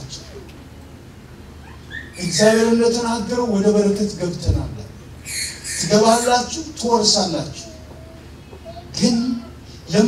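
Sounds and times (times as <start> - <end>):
low room hum: 0.0 - 10.0
man speaking: 2.2 - 5.0, 5.8 - 7.7.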